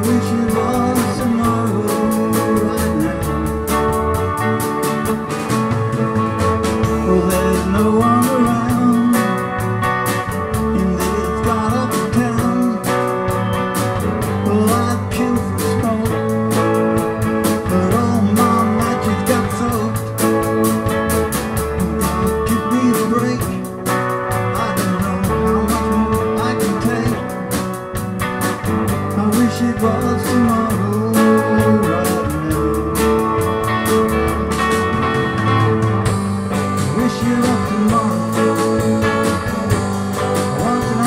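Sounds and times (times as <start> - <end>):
live pop-rock band playing: 0.0 - 41.0.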